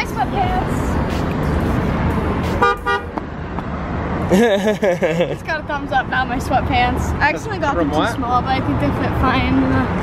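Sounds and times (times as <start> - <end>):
street traffic rumble: 0.0 - 10.0
car horn honking: 2.4 - 3.2.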